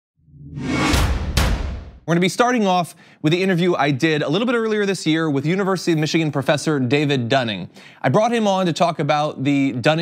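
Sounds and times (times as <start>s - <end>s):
whoosh: 0.2s - 2.0s
sharp hits: 0.4s - 2.1s.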